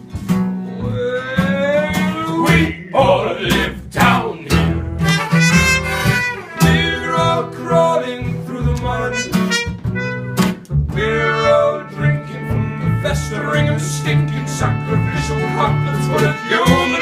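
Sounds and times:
acoustic guitar: 0:00.0 - 0:17.0
upright double bass: 0:00.0 - 0:17.0
trumpet melody: 0:04.8 - 0:07.8, 0:08.9 - 0:17.0.

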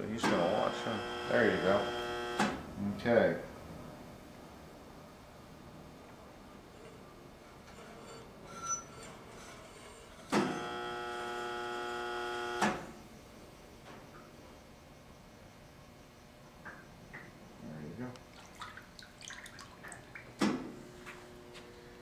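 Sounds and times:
electric buzz: 0:00.2 - 0:02.7, 0:10.3 - 0:13.0
low background hum: 0:12.8 - 0:22.0.

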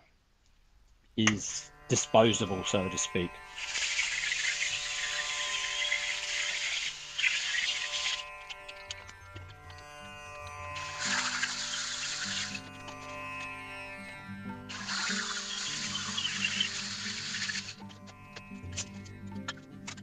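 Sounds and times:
background music with strings: 0:01.2 - 0:20.0
angle grinder cutting steel: 0:01.9 - 0:19.2.

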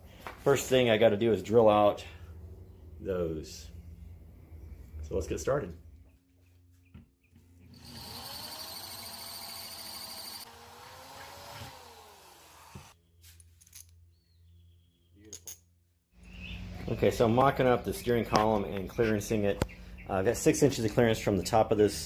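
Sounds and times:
electric drill drilling through metal: 0:07.7 - 0:13.0.

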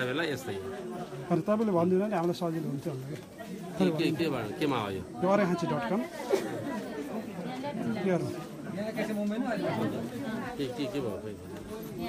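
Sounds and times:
people talking over each other: 0:00.0 - 0:12.0.

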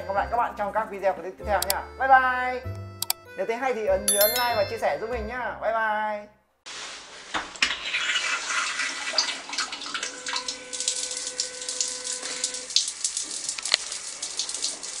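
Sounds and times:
water spray hissing into toilet bowl: 0:07.3 - 0:15.0.

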